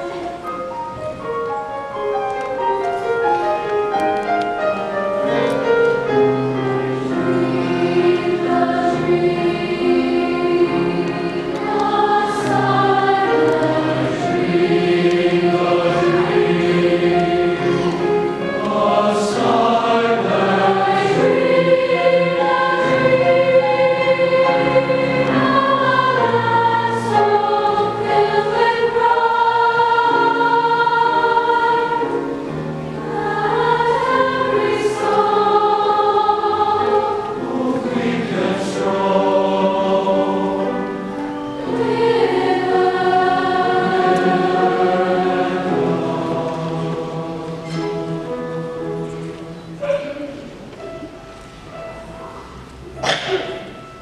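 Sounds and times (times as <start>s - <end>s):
mixed choir singing in harmony: 0.0s - 54.0s.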